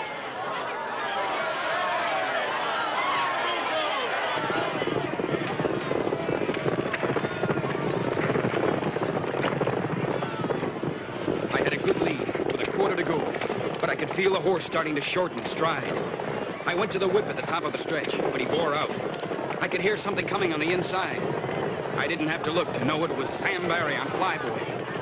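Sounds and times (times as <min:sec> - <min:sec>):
crowd cheering and shouting: 0:00.0 - 0:25.0
horses' hooves galloping on dirt: 0:01.7 - 0:25.0.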